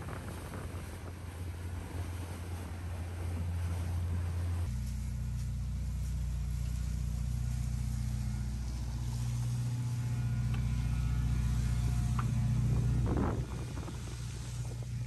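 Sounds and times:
car engine idling: 4.7s - 15.0s.

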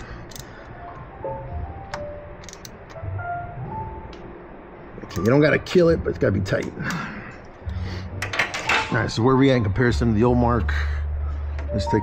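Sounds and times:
low steady hum: 0.0s - 12.0s
ratchet wrench clicking: 0.2s - 0.5s, 2.4s - 2.8s.

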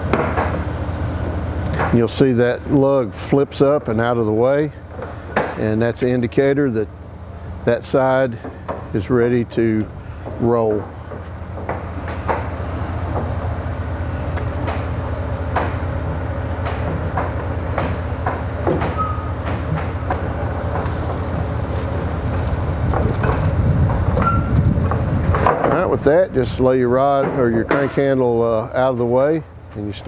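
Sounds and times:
diesel engine idling: 0.0s - 30.0s.

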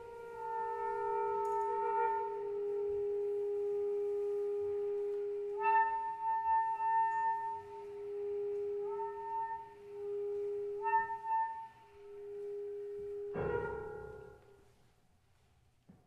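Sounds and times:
chamber music for woodwinds and cello: 0.0s - 14.5s.

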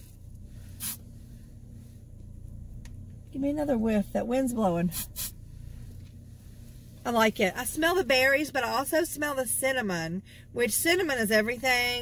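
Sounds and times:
low rumble inside a car: 0.0s - 12.0s
person sniffing: 0.7s - 1.0s.

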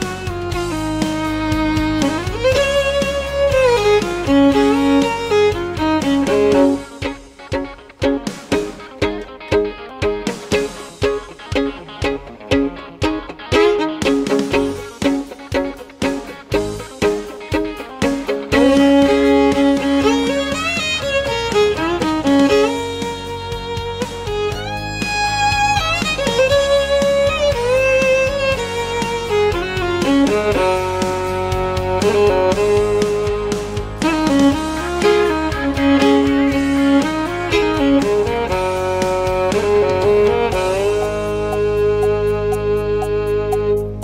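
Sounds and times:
backing track with low bass: 0.0s - 44.0s
fiddle playing: 0.0s - 44.0s.

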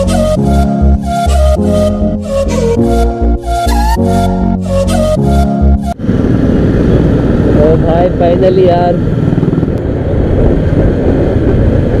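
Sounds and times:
motorcycle engine running: 5.9s - 12.0s
wind rushing over microphone: 6.0s - 12.0s.

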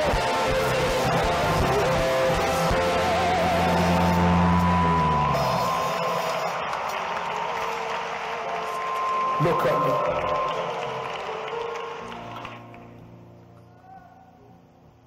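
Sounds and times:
live church band music: 0.0s - 12.9s.

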